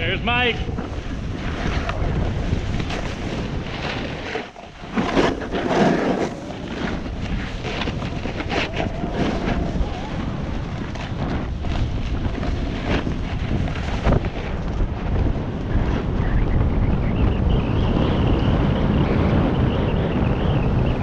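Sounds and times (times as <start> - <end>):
snowboard scraping over snow: 0.0 - 21.0
wind rushing over microphone: 0.0 - 21.0.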